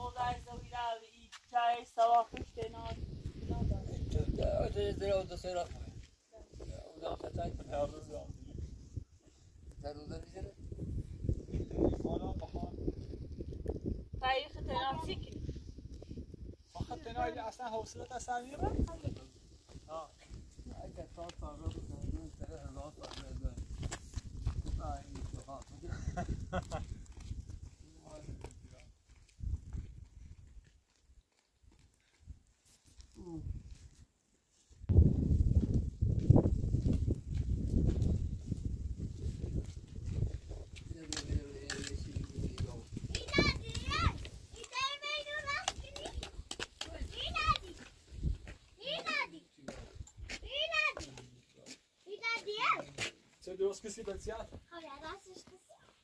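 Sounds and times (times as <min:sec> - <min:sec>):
people talking: 0:41.0 - 0:46.2, 0:46.8 - 0:47.8.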